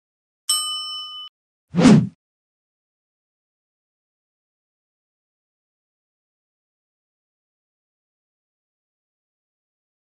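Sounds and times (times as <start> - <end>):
bell notification chime: 0.5 - 1.3
short loud whoosh: 1.8 - 2.2.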